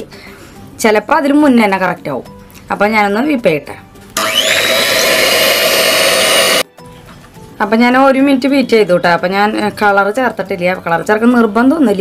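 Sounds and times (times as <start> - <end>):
electric hand mixer whining: 4.2 - 6.7.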